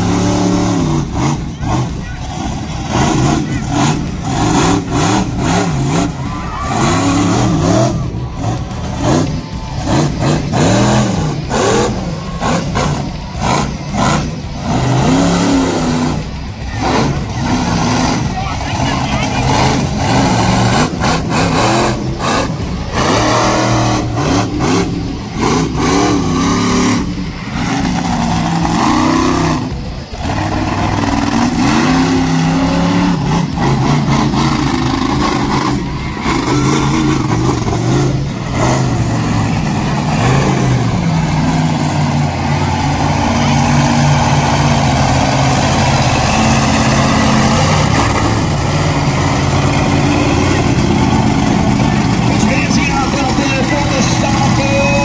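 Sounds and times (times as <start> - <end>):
monster truck engine revving: 0.0 - 55.0.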